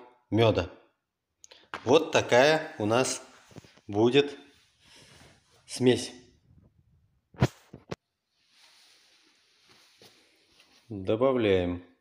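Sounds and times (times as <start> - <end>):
faint rustling: 7.6 - 11.0.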